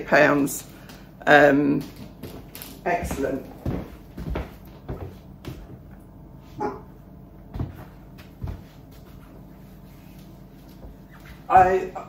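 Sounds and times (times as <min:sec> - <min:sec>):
soft footsteps on wooden floor: 0:01.7 - 0:06.0, 0:07.4 - 0:11.9.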